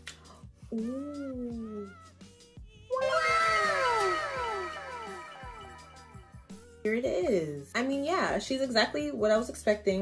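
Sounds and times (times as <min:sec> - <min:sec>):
cascade of falling tones: 0:02.9 - 0:06.4.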